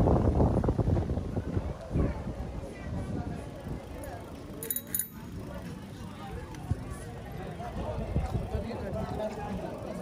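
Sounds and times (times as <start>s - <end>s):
passers-by talking: 0.6s - 10.0s
short metallic clinks: 4.6s - 5.4s.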